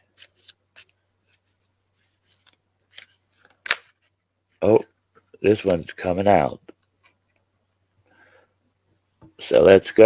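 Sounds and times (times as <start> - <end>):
cards being shuffled: 0.0 - 4.2
card snap: 2.9 - 3.9.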